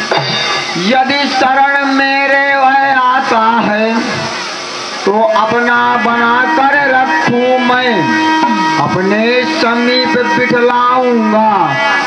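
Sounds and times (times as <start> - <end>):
live stage music: 0.0 - 12.0.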